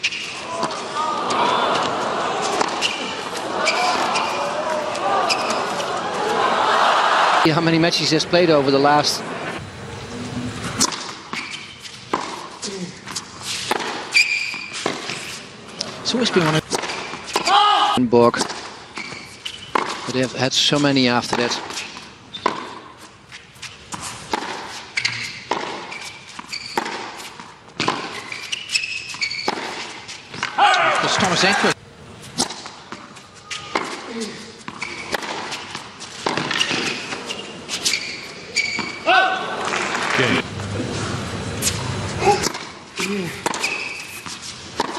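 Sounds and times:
racket striking tennis ball: 0.0s - 6.0s, 10.6s - 15.3s, 16.4s - 17.6s, 18.4s - 20.1s, 21.3s - 23.0s, 23.7s - 37.3s, 41.6s - 44.9s
shoes squeaking on court: 0.0s - 6.4s, 10.3s - 17.6s, 18.3s - 31.5s, 32.1s - 44.9s
shoe squeak on court: 2.6s - 4.5s, 5.2s - 5.7s, 10.8s - 12.4s, 13.5s - 15.4s, 18.9s - 20.0s, 21.7s - 22.9s, 24.8s - 30.5s, 34.7s - 39.1s, 43.4s - 44.9s
ball bouncing on hard court: 10.8s - 12.5s, 18.4s - 20.1s, 22.4s - 22.9s, 25.4s - 27.1s, 27.8s - 28.3s, 36.2s - 37.1s, 43.4s - 44.9s.

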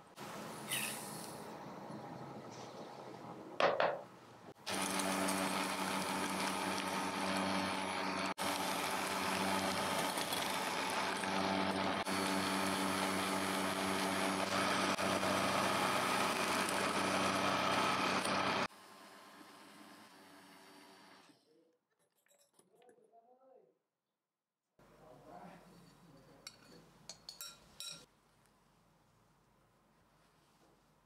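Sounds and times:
electric hand mixer running: 4.6s - 21.3s.

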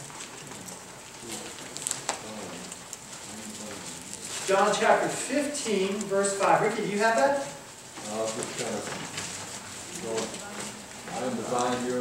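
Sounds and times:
book pages rustling: 0.0s - 12.0s.

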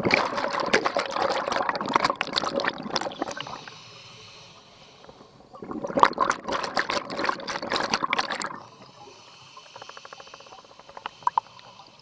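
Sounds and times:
underwater breath bubbles: 0.0s - 12.0s.

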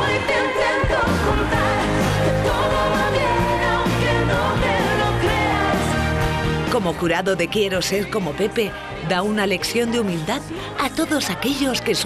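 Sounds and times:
woman singing pop song: 0.0s - 12.0s.

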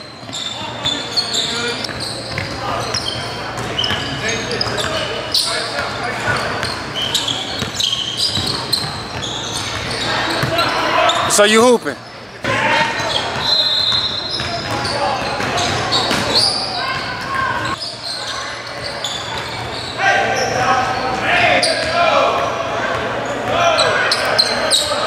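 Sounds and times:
players' voices echoing: 0.0s - 13.6s, 14.2s - 25.0s.

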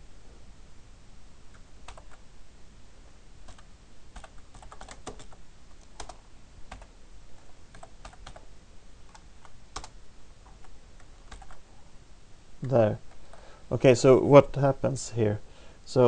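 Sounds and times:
computer keyboard typing: 1.8s - 2.2s, 3.4s - 8.5s, 9.1s - 11.6s.

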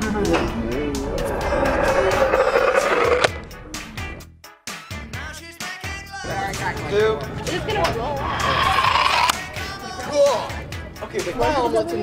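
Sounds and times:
toy car rolling down metal ramp: 8.2s - 9.4s.

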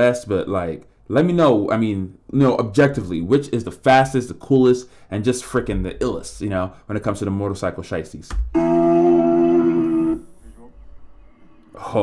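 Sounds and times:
man humming low: 8.6s - 10.7s.

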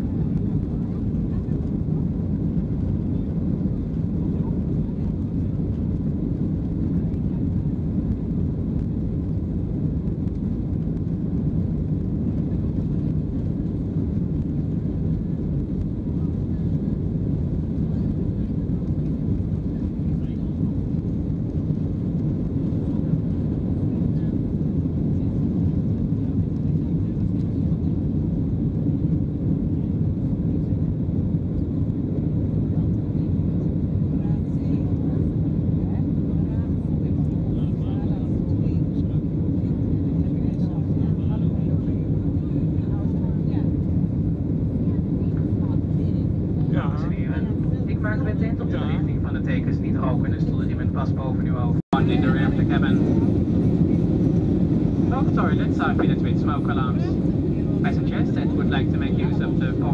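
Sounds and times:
jet engines at takeoff thrust: 0.0s - 59.9s.

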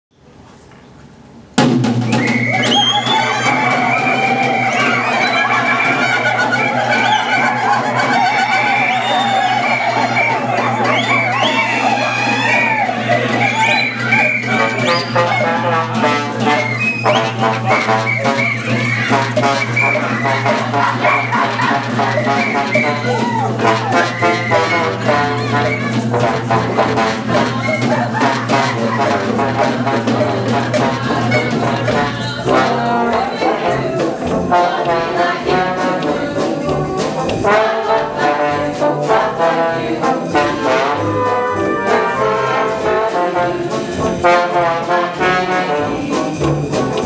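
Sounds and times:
brass band playing swing: 1.6s - 47.0s.

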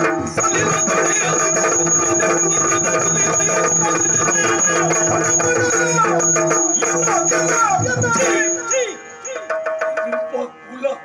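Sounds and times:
steady held drone: 0.0s - 9.3s
drum playing a rhythm: 0.0s - 10.9s.

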